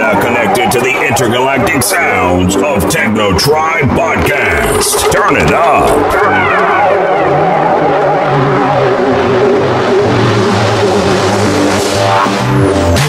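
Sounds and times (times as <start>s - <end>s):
droning synth tones and bass: 0.0s - 13.0s
synth sweep: 4.0s - 12.5s.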